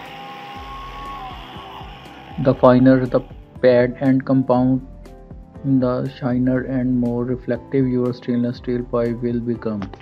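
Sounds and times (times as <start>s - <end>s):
angle grinder whine on metal pipe: 0.0s - 3.6s
background music: 0.0s - 10.0s.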